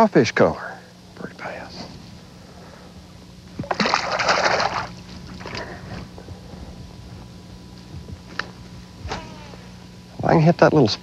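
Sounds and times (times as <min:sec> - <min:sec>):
fish splashing in water: 0:03.6 - 0:05.8
small water sounds: 0:03.6 - 0:05.8.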